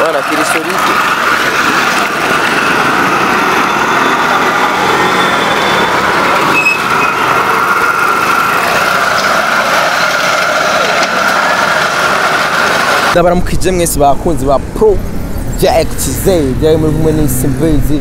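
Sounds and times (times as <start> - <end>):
small engine running: 0.0 - 13.2
street traffic: 0.0 - 18.0.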